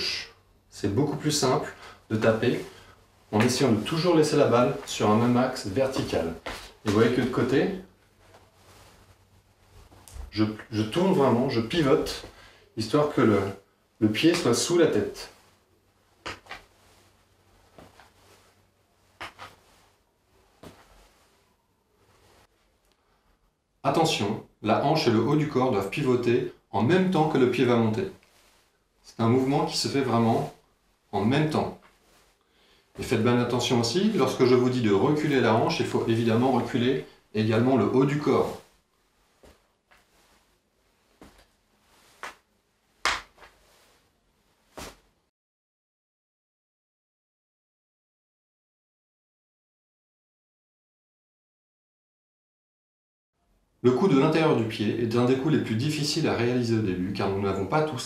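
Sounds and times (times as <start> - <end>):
sneakers stepping on wooden floor: 5.8 - 7.1.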